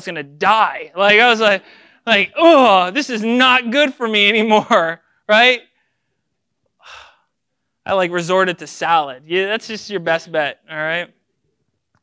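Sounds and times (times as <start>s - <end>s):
man's breathy intake of air: 1.6s - 2.0s, 6.8s - 7.3s.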